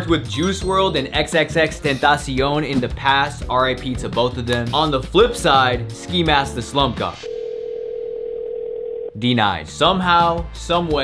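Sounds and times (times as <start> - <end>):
phone ringback tone: 7.3 - 9.2.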